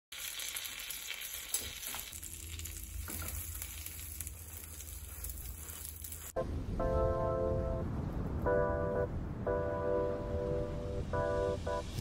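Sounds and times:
fish cakes sizzling in a pan: 0:00.1 - 0:06.4.

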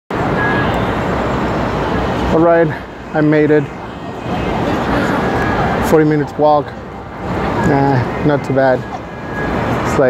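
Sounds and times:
city traffic and street noise: 0:00.1 - 0:10.0.

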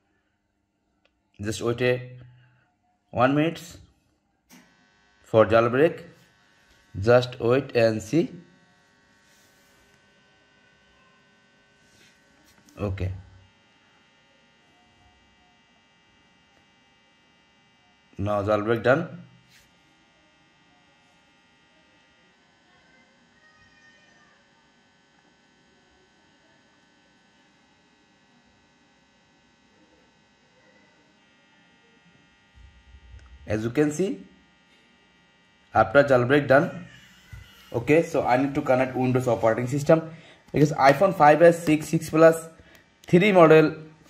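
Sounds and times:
faint electrical hum: 0:00.0 - 0:44.0
thin high whine: 0:01.4 - 0:44.0.

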